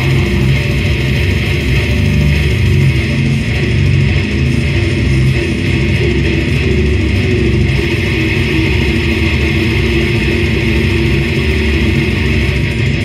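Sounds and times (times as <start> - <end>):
metal band playing: 0.0 - 13.0.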